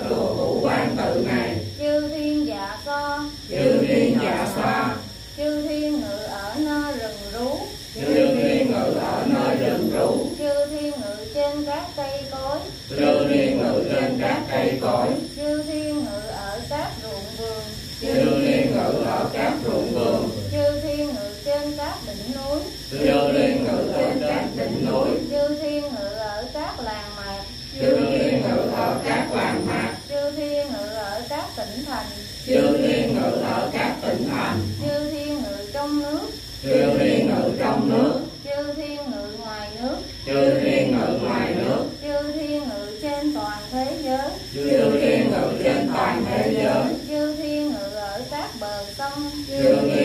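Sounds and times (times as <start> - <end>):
group chanting: 0.0 - 2.0, 3.4 - 5.2, 7.9 - 10.4, 12.8 - 15.4, 18.0 - 21.2, 22.9 - 25.6, 27.8 - 30.2, 32.3 - 35.4, 36.6 - 38.4, 40.2 - 42.6, 44.5 - 47.4, 49.5 - 50.0
woman chanting melodically: 0.0 - 50.0.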